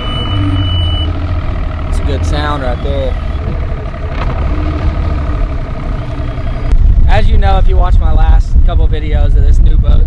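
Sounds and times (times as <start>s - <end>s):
thin high beep: 0.0s - 1.1s
outboard motor idling: 0.0s - 6.7s.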